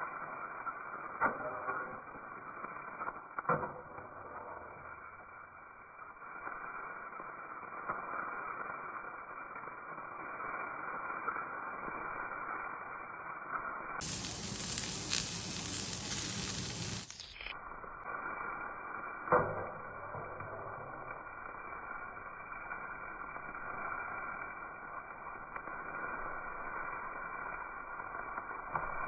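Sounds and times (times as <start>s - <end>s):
food sizzling in hot oil: 0.0s - 29.0s.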